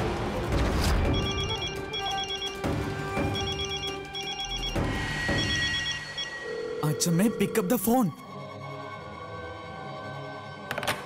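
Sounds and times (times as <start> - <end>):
dramatic background music: 0.0 - 11.0
electronic telephone ringing: 1.1 - 6.6.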